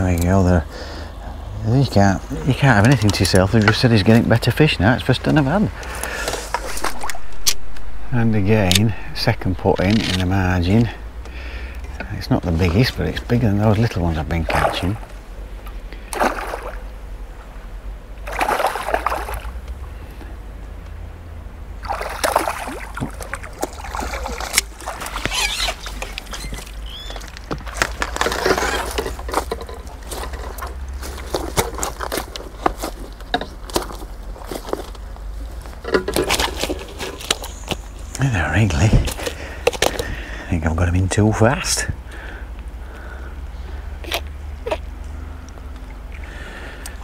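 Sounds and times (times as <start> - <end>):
fish splashing in water: 16.0 - 16.9, 18.2 - 19.7, 21.8 - 32.3.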